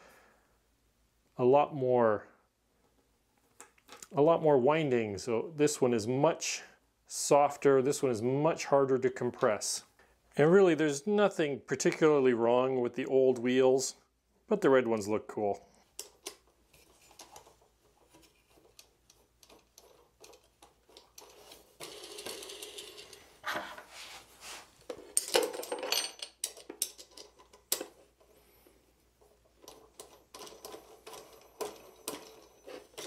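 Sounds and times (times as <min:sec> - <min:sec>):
small metallic clicks and rattles: 0:16.0 - 0:23.2, 0:25.2 - 0:28.0, 0:29.5 - 0:33.0.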